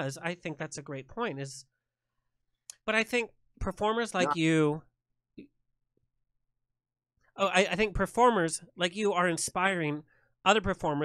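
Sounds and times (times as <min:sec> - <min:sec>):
person speaking: 0:00.0 - 0:01.6, 0:02.7 - 0:04.8.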